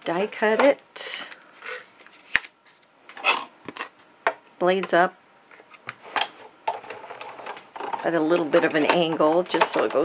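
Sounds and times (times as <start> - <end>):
plastic plates sliding: 5.5 - 10.0
plastic plates clicking: 6.2 - 10.0.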